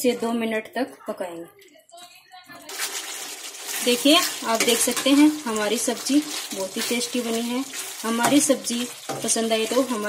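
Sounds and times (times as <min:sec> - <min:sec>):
ladle stirring in a pan: 0:02.6 - 0:10.0
pan sizzling: 0:02.6 - 0:10.0.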